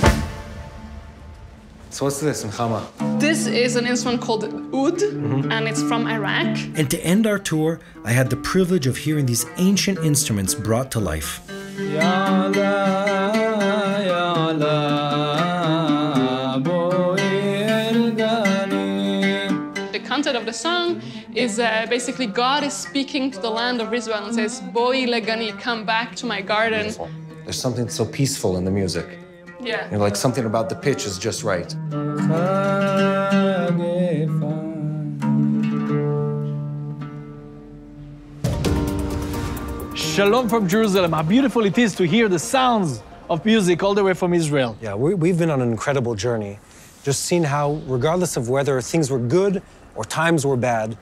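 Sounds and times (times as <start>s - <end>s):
oud playing: 0.0s - 43.3s
man singing: 6.7s - 19.9s, 26.7s - 35.9s
plucked oud: 31.6s - 42.5s.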